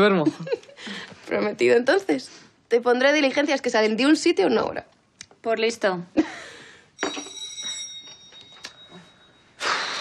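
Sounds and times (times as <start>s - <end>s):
electric doorbell ringing: 7.0s - 9.5s.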